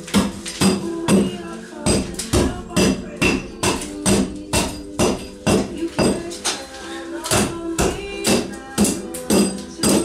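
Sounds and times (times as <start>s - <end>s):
hatchet striking timber: 1.9s - 6.2s, 7.2s - 10.0s.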